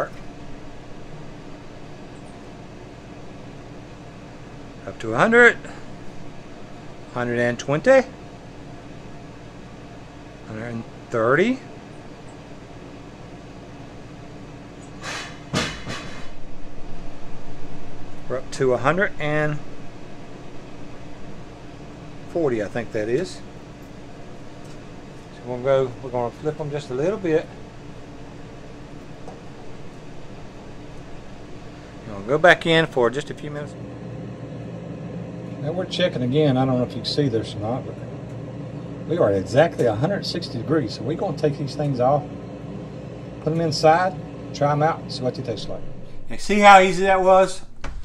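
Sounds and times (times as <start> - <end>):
air fryer fan humming: 0.0 - 48.0.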